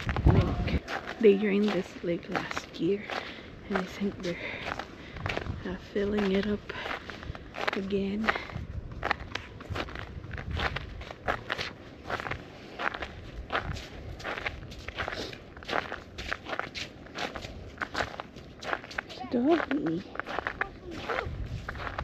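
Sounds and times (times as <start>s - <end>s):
wind rumble on microphone: 0.0s - 19.0s, 20.0s - 22.0s
footsteps on wet pavement: 0.0s - 22.0s.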